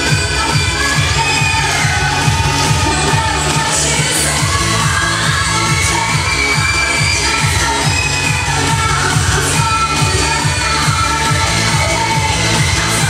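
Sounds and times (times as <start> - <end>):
pop dance music over loudspeakers: 0.0 - 13.0.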